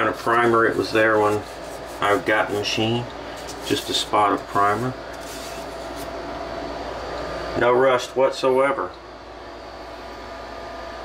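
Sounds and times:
machinery hum and hiss: 0:00.0 - 0:11.0.

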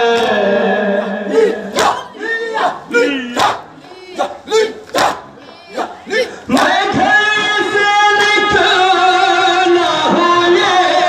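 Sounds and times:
person singing: 0:00.0 - 0:03.4
men calling out together: 0:00.0 - 0:11.0.

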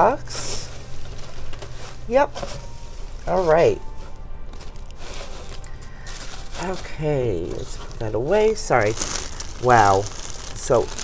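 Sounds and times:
shredded paper rustling: 0:00.0 - 0:11.0
soft background music: 0:00.0 - 0:11.0.

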